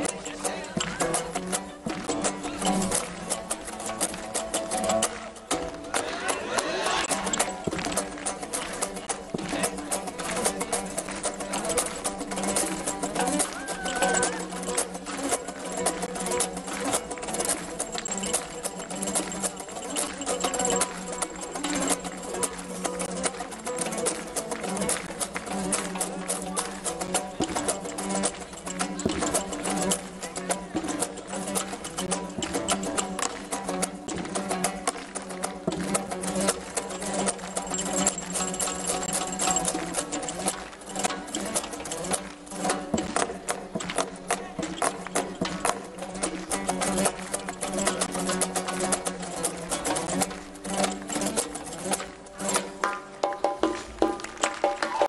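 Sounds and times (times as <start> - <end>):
frame drum: 0.0 - 55.0
plucked long-necked lute: 0.0 - 55.0.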